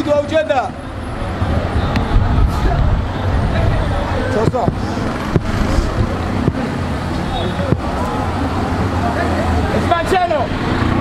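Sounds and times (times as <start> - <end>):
road noise: 0.0 - 11.0
traffic engine hum: 0.0 - 11.0
faint distant voices: 0.4 - 10.7
sharp knocks: 4.4 - 6.7.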